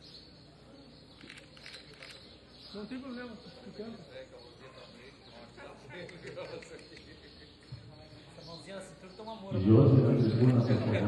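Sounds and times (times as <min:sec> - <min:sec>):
faint background ambience: 0:00.0 - 0:11.0.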